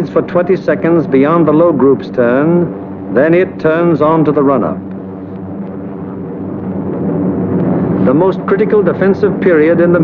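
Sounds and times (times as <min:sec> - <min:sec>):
piston aircraft engines droning: 0:00.0 - 0:10.0.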